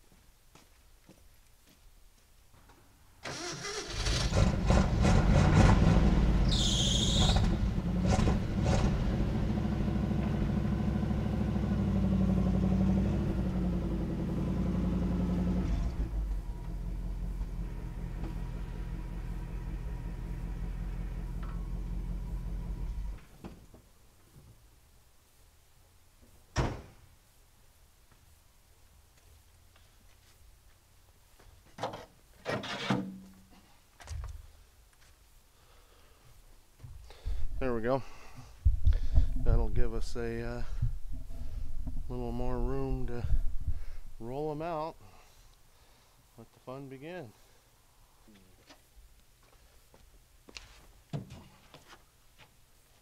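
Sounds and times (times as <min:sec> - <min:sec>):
truck engine starting and revving: 0:03.2 - 0:23.2
high squeal: 0:06.4 - 0:07.5.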